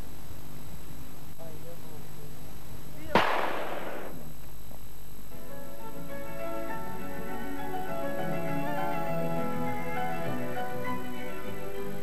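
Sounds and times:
rifle shot with echo: 0:03.1 - 0:04.3.

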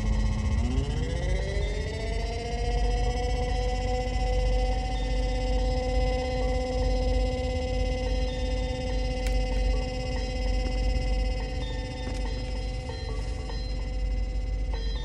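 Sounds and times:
constant low rumble: 0:00.0 - 0:15.0
synthesizer drone chord: 0:00.0 - 0:15.0.

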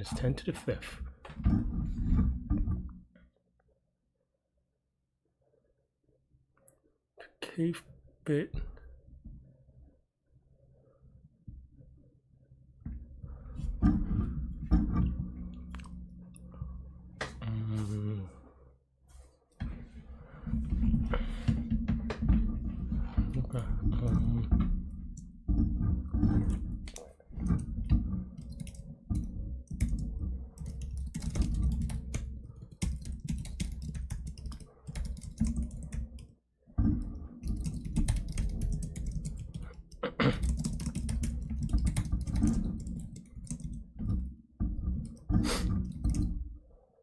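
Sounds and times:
rapid typing on keyboard: 0:28.4 - 0:36.3, 0:37.4 - 0:43.8.

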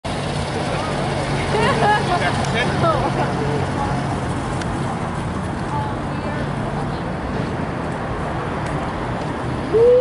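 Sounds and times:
street traffic engine hum: 0:00.0 - 0:10.0.

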